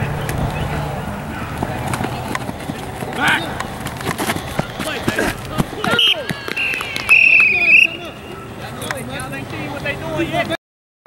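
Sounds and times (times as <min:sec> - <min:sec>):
people shouting: 0:02.8 - 0:08.7
referee's whistle blast: 0:05.8 - 0:08.2.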